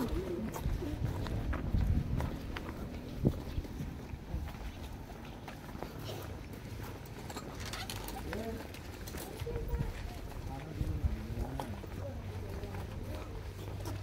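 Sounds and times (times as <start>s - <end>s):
low rumble on microphone: 0.0s - 4.9s
footsteps on concrete: 0.0s - 7.3s, 8.1s - 14.0s.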